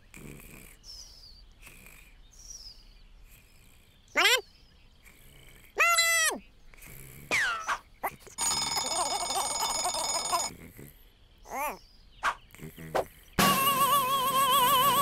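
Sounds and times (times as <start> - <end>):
cartoon chick chirping: 5.8 - 6.4, 7.3 - 10.5, 11.5 - 15.0
cartoon alarm clock ringing: 8.4 - 10.5.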